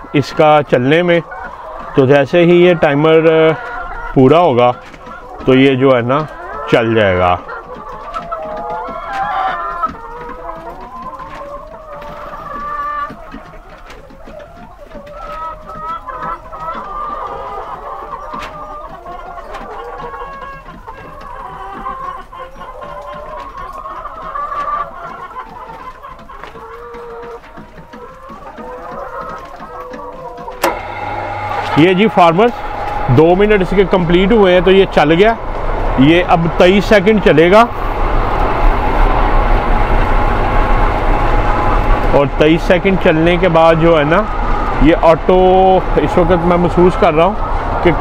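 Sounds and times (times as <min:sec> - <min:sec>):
hens clucking: 0:00.0 - 0:48.0
relay click: 0:30.6 - 0:31.8
exhaust fan humming: 0:30.6 - 0:48.0.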